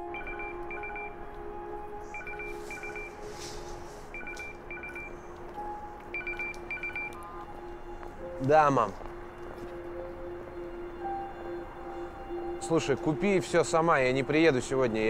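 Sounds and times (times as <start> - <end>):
electronic phone ringtone trills: 0.0 - 1.2, 2.1 - 3.2, 4.1 - 5.2, 6.1 - 7.2
soft background music: 0.0 - 15.0.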